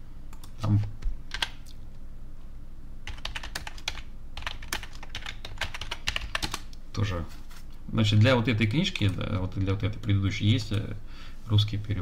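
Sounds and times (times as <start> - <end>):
typing on computer keyboard: 1.3 - 1.6, 3.1 - 6.8.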